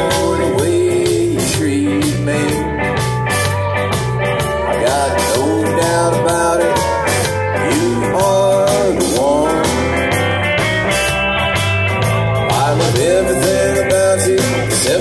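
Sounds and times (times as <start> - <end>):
bass guitar: 0.0 - 15.0
drum kit with cymbals: 0.0 - 15.0
guitars: 0.0 - 15.0
sliding lead guitar line: 0.0 - 15.0.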